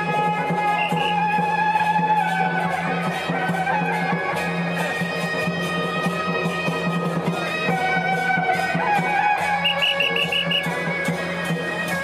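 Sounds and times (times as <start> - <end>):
shrill wind instrument melody: 0.0 - 7.2, 8.3 - 11.6.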